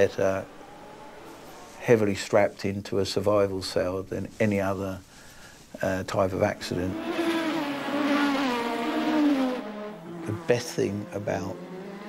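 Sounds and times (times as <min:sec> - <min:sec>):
racing car engine high note: 0:00.0 - 0:01.8, 0:06.6 - 0:12.0.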